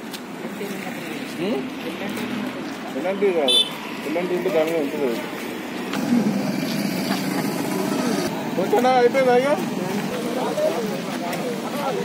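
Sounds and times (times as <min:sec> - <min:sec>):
road traffic noise: 0:00.0 - 0:12.0
bystanders talking: 0:00.2 - 0:12.0.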